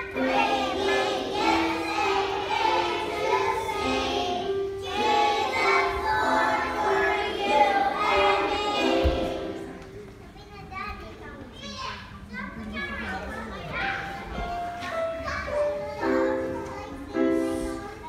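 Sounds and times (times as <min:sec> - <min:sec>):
children's choir singing: 0:00.0 - 0:10.0
children chattering: 0:00.0 - 0:18.0.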